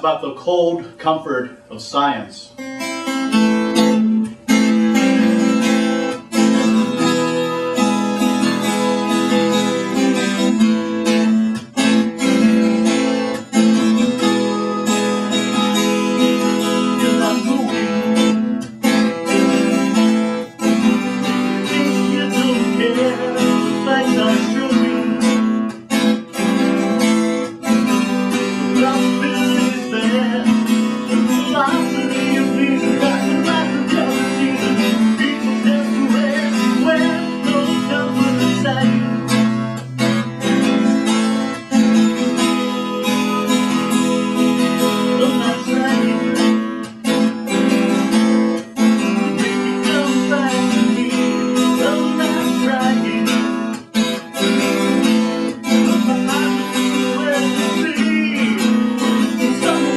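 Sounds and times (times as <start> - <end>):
acoustic guitars strumming chords: 0.0 - 59.9.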